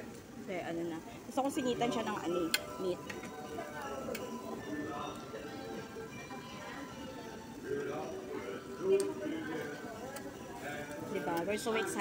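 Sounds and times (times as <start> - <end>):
faint music: 0.0 - 12.0
indistinct talking: 0.0 - 12.0.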